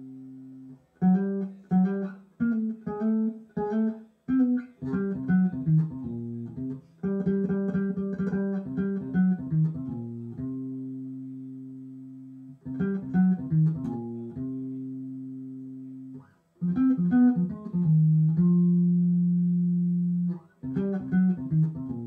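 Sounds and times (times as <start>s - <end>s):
electric bass guitar melody: 0.0s - 22.0s.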